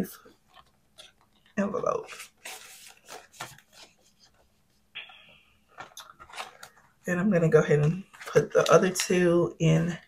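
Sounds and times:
paper card rustling: 0.3 - 5.1, 5.7 - 7.0
card sliding into plastic envelope: 2.1 - 4.2.

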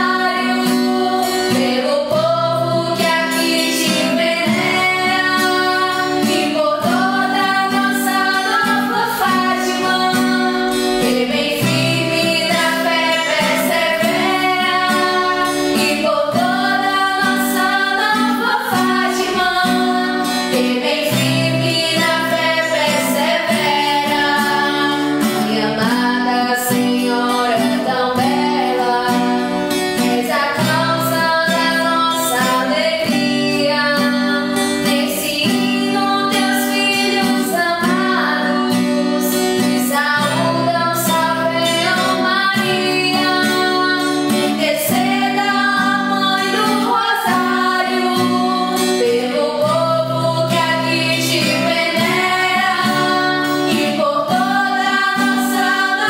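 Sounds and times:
strummed acoustic guitar: 0.0 - 56.0
women singing: 0.0 - 56.0.

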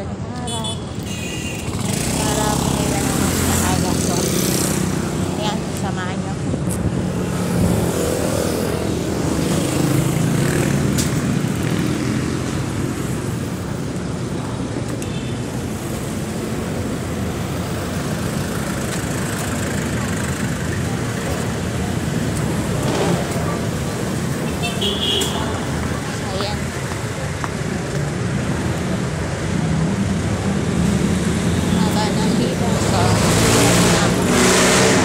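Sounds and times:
passing cars: 0.0 - 35.0.

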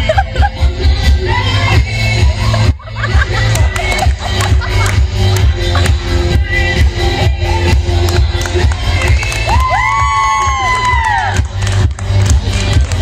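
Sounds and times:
music with heavy pulsing bass: 0.0 - 13.0
friends cheering: 9.2 - 11.5.

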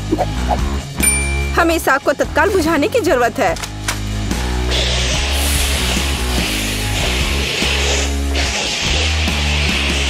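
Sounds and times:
loud rock music: 0.0 - 10.0
fire extinguisher spraying: 5.0 - 8.3.

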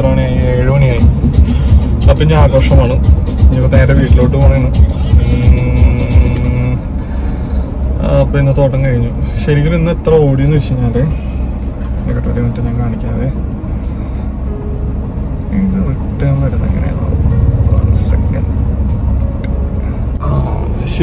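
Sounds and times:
car engine rumble and road noise: 0.0 - 21.0
music: 0.0 - 21.0.

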